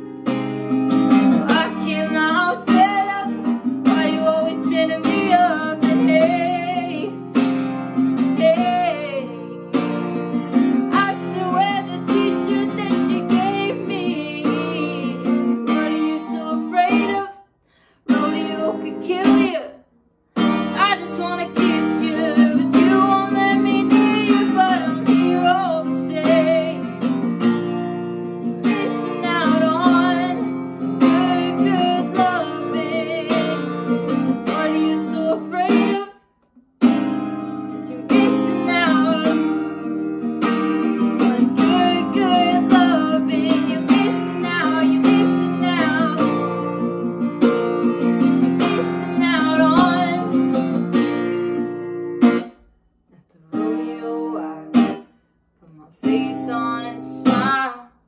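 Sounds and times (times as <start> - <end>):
acoustic guitar strumming: 0.0 - 17.3, 20.4 - 52.7
person singing: 1.2 - 7.2, 8.2 - 9.7, 10.8 - 17.4, 18.1 - 19.8, 20.6 - 27.0, 28.6 - 36.2, 37.7 - 39.7, 41.0 - 46.6, 48.2 - 50.7, 53.2 - 55.0, 55.6 - 57.9.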